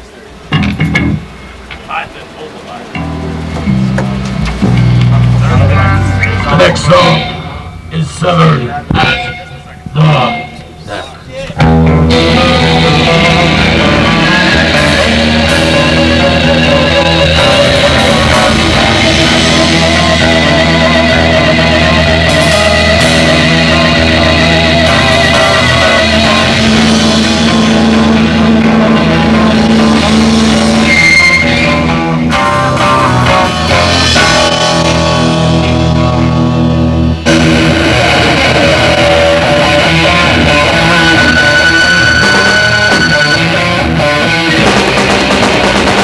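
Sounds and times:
live band with electric guitars: 0.0 - 46.0.

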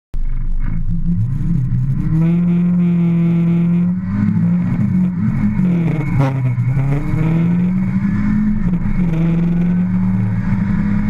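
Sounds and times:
race car engine revving: 0.2 - 11.0.

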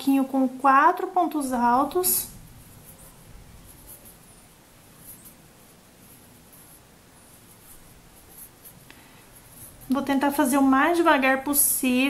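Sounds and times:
crochet hook scratchy rustles: 0.0 - 12.0.

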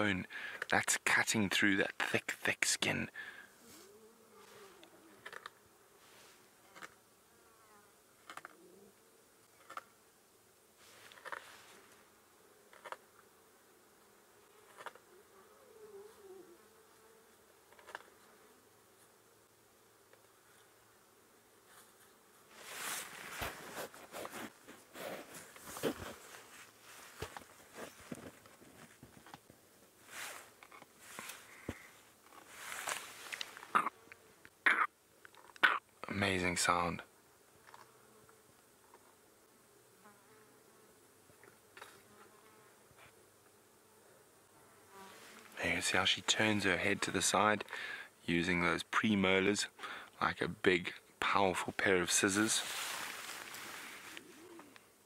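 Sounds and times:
faint insect buzz: 2.5 - 55.0.

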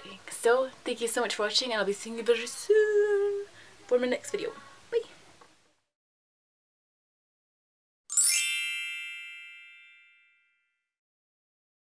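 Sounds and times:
bright high chime: 8.1 - 10.8.

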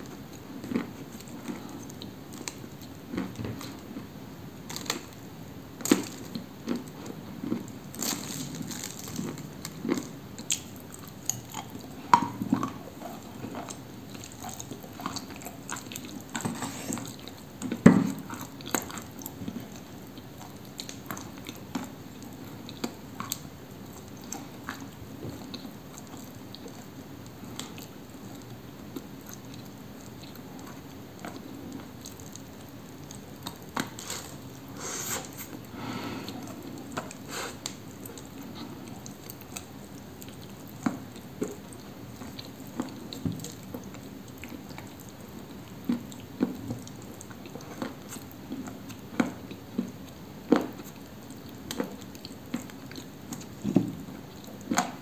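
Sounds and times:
person crunching and chewing: 0.1 - 5.2, 5.8 - 26.9, 27.5 - 55.0.

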